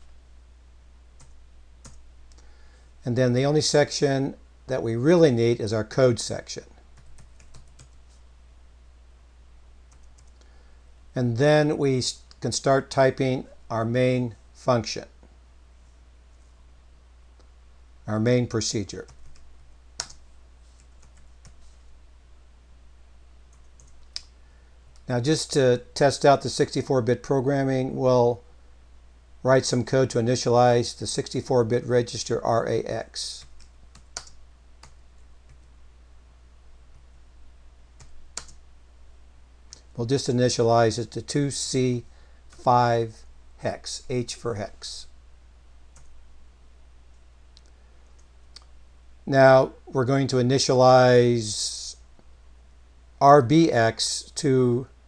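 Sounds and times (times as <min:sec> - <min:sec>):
low steady hum: 0:00.0 - 0:55.0
computer keyboard typing: 0:07.0 - 0:08.0, 0:19.1 - 0:20.2, 0:33.4 - 0:35.7, 0:38.0 - 0:38.6.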